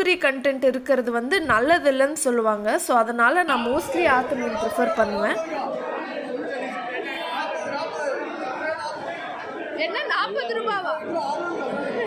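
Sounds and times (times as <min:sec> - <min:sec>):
crowd talking indoors: 0:00.0 - 0:12.0.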